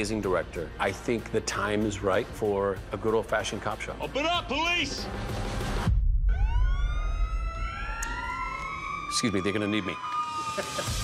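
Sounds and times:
emergency vehicle siren: 0:06.3 - 0:11.0.

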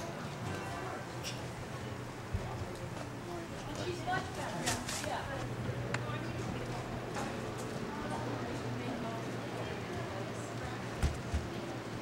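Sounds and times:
faint distant voices: 0:00.0 - 0:12.0
steady low hum: 0:00.0 - 0:12.0.

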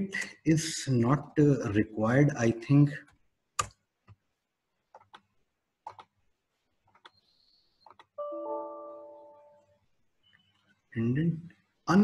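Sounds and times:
mouse clicks: 0:06.9 - 0:08.2
computer error chime: 0:08.2 - 0:09.6.

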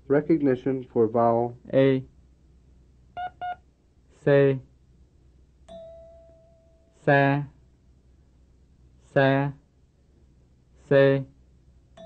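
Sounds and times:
short electronic beeps: 0:03.2 - 0:03.6.

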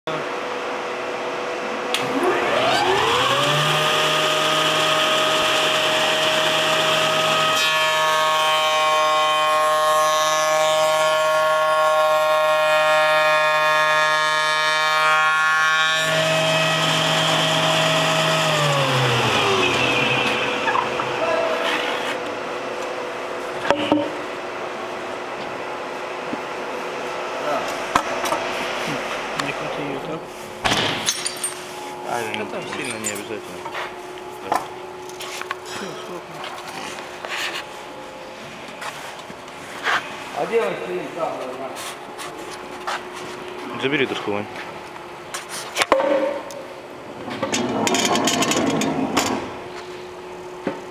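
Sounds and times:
spindle moulder motor whine: 0:00.4 - 0:30.5.

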